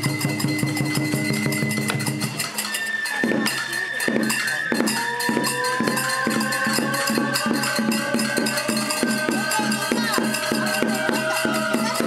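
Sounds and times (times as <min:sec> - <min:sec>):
bamboo flute high notes: 0:00.0 - 0:12.0
hand cymbals clinking: 0:00.0 - 0:12.0
taiko drum beats: 0:00.0 - 0:12.0.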